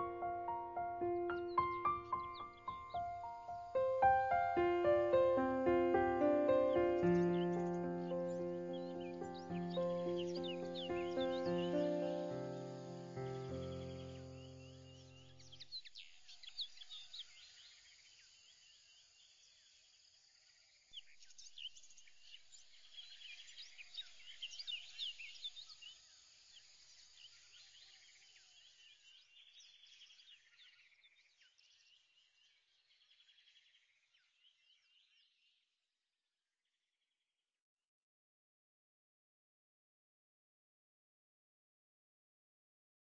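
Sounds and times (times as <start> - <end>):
birds chirping and trilling: 0.0 - 17.8, 21.0 - 26.0.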